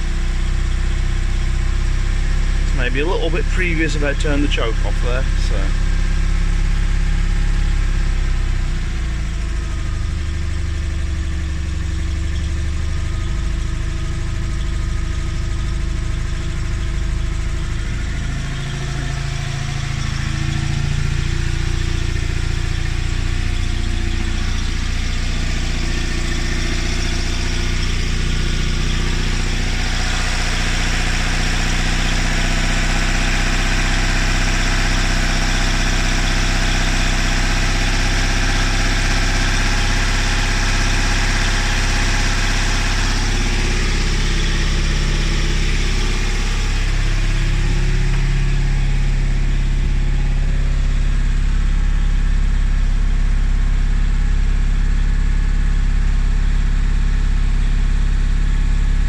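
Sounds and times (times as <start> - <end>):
flat-twin engine idling: 0.0 - 59.0.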